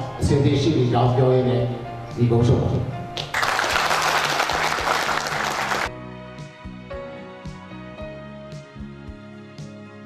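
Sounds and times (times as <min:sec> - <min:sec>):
soft background music: 0:00.0 - 0:10.0
audience applauding: 0:03.2 - 0:05.9.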